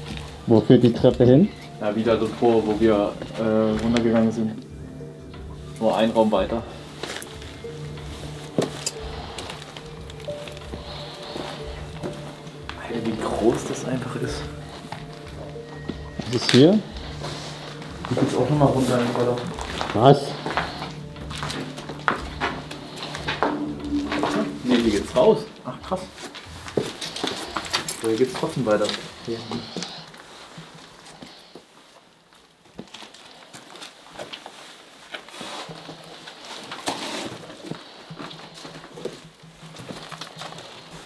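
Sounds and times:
droning background music: 0:00.0 - 0:31.4
footsteps over debris: 0:00.0 - 0:41.0
footsteps on rubble: 0:06.5 - 0:25.3
short pitched sound: 0:23.4 - 0:25.2.

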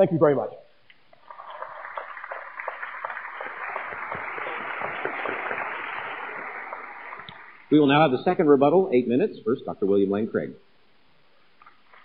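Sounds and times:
audience applauding: 0:01.2 - 0:07.7.

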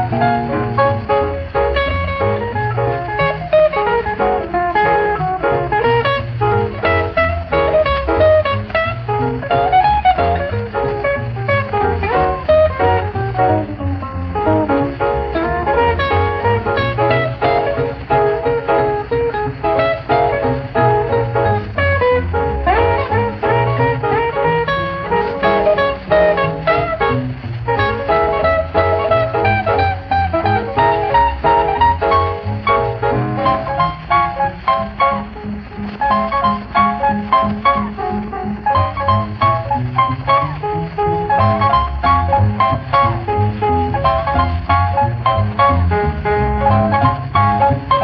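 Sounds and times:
boogie-woogie piano: 0:00.0 - 0:48.0
guitar: 0:00.0 - 0:48.0
upright bass: 0:00.0 - 0:48.0.

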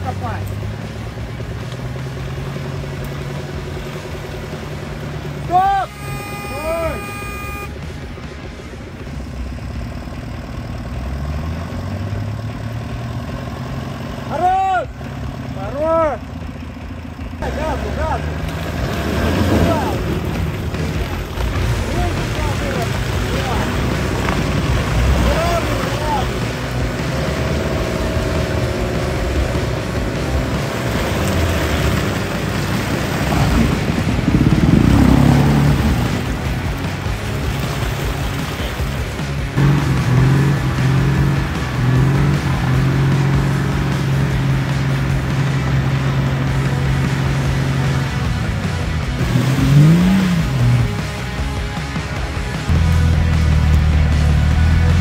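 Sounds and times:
engine revving hard: 0:00.0 - 0:07.8, 0:10.8 - 0:14.6, 0:17.4 - 0:55.0
wheel spinning in mud: 0:17.4 - 0:51.0.

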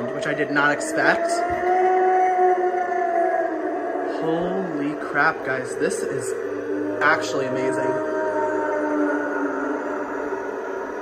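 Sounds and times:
eerie held electronic tone: 0:00.0 - 0:11.0.

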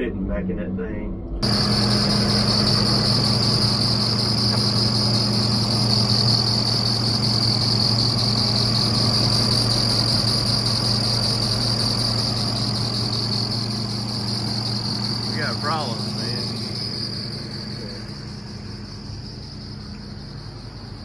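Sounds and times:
diesel engine idling: 0:00.0 - 0:21.0
steady high whine: 0:00.0 - 0:21.0.

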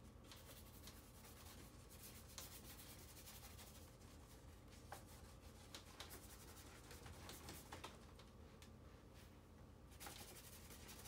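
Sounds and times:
paintbrush scratching on paper: 0:00.3 - 0:07.7, 0:09.9 - 0:11.0.

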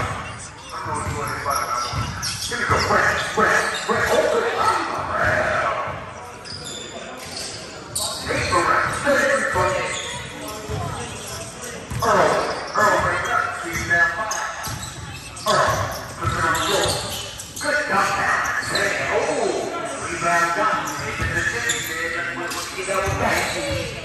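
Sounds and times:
players calling out echoing: 0:00.0 - 0:24.0.

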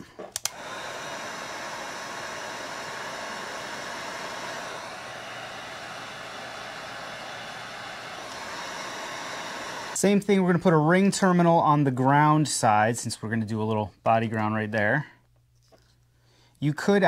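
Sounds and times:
heat gun blowing: 0:00.0 - 0:10.0.

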